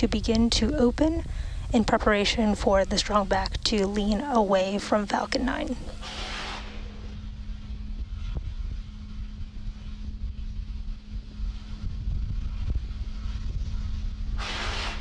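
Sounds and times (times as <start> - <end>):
constant hum: 0.0 - 15.0
low rumble: 0.0 - 15.0
burst of hiss: 6.0 - 6.8, 14.4 - 15.0.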